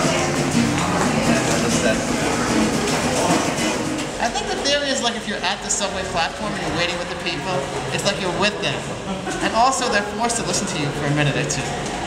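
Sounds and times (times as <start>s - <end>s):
acoustic guitar playing: 0.0s - 12.0s
background noise and voices: 0.0s - 12.0s
man talking: 0.8s - 2.4s, 4.2s - 11.8s.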